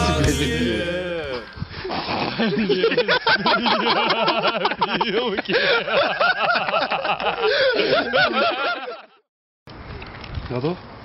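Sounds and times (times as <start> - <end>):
man laughing heartily: 1.3 - 9.2.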